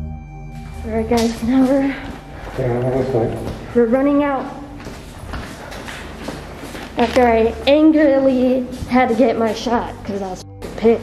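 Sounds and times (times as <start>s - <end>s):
footsteps on gritty concrete: 4.3s - 10.9s.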